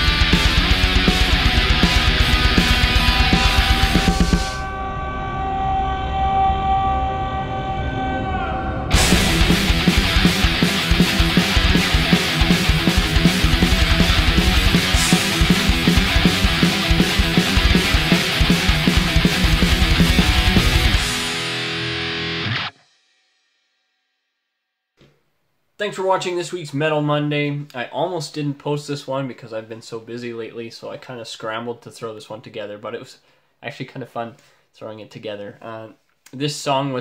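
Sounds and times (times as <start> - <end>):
low bass: 0.0 - 7.5, 8.3 - 21.6
sustained heavy metal chord: 0.0 - 22.7
distorted electric guitar: 0.0 - 22.8.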